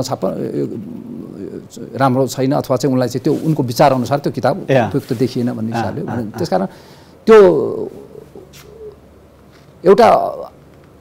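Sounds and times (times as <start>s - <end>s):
man drawing out a word: 4.6s - 6.6s.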